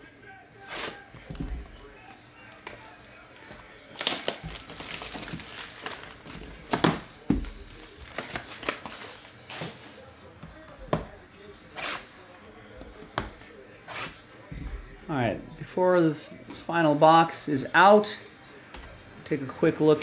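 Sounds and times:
plastic wrap crinkling and tearing: 0:02.5 - 0:09.9.

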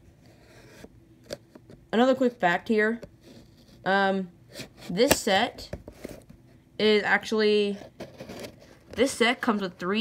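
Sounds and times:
scissors scraping cardboard: 0:07.9 - 0:08.8.

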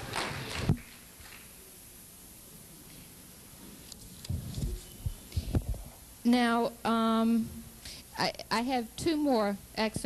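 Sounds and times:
microphone handling thumps: 0:04.2 - 0:06.0.

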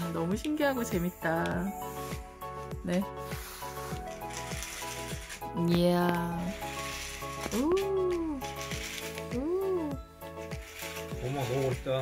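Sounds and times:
music with held notes: 0:00.0 - 0:12.0.

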